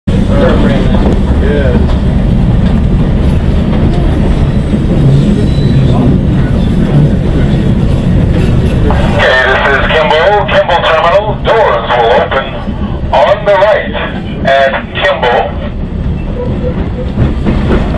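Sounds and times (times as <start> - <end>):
train rumbling over track: 0.1 - 17.9
recorded station announcement: 8.9 - 15.7.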